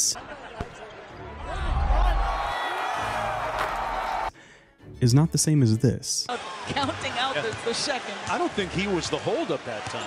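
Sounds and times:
arena crowd noise: 0:00.0 - 0:04.3, 0:06.3 - 0:10.0.

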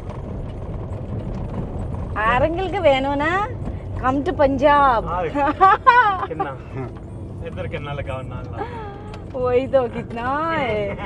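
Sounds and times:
tyres rumbling on dirt road: 0:00.0 - 0:11.0.

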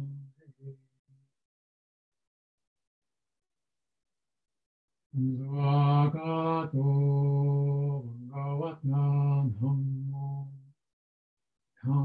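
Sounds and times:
man chanting: 0:05.2 - 0:10.7, 0:11.8 - 0:12.0.

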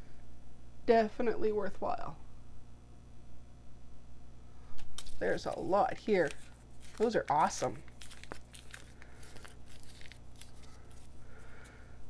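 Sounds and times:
paper rustling: 0:04.8 - 0:11.8.

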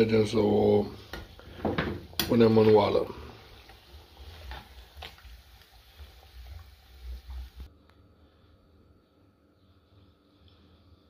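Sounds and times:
meat sizzling in fat: 0:00.0 - 0:07.7.

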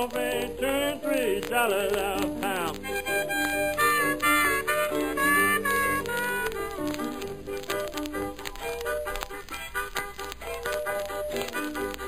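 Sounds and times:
blues harmonica: 0:00.0 - 0:12.0
person singing: 0:00.0 - 0:12.0.

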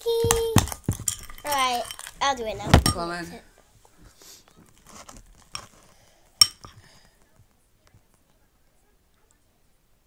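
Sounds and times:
spoon stirring slime: 0:00.0 - 0:03.1, 0:04.7 - 0:07.0
spoon clinking on metal bowl: 0:00.3 - 0:02.2, 0:06.4 - 0:06.8.

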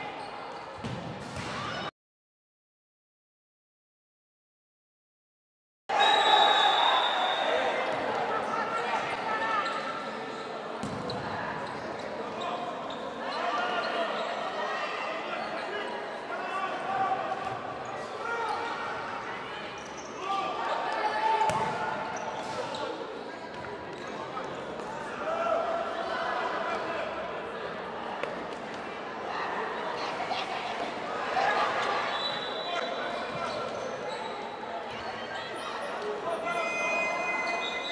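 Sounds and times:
voices in a gymnasium: 0:00.0 - 0:01.9, 0:05.9 - 0:37.9
people shouting in a gym: 0:13.2 - 0:19.6, 0:25.0 - 0:27.2.

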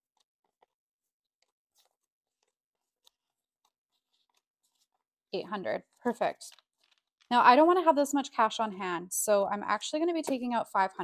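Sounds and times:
banknotes crinkling: 0:00.0 - 0:05.1, 0:05.8 - 0:07.3.

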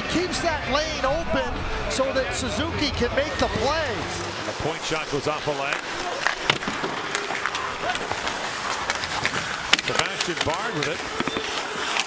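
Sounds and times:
crowd murmur: 0:00.0 - 0:12.0
skates scraping ice: 0:03.3 - 0:12.0
sticks and puck clacking: 0:04.3 - 0:12.0.

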